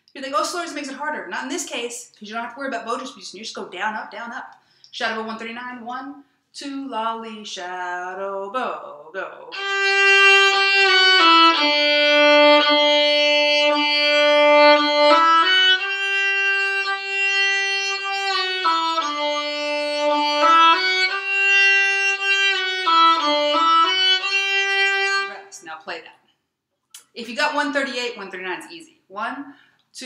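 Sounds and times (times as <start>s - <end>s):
bowed solo violin: 9.5s - 25.6s.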